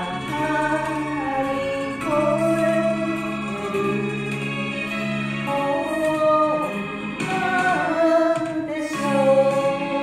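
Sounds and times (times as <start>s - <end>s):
woman singing with vibrato: 0.0s - 4.2s, 5.4s - 10.0s
karaoke backing band and strings: 0.0s - 10.0s.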